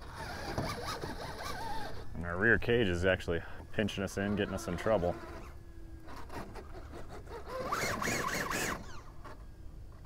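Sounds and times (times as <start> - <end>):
toy car motor whining: 0.0 - 2.1, 3.9 - 10.0
toy car scraping against rock: 0.0 - 2.2, 4.0 - 9.5.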